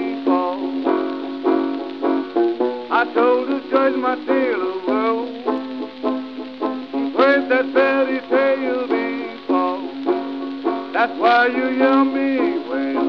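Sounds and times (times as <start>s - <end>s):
plucked banjo run: 0.0s - 13.0s.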